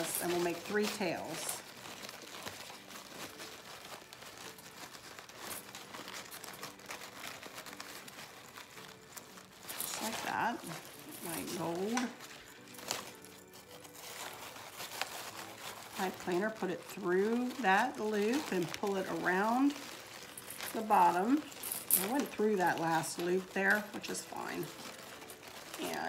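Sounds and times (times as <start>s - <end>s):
fabric ribbon rustling: 0.0s - 26.0s.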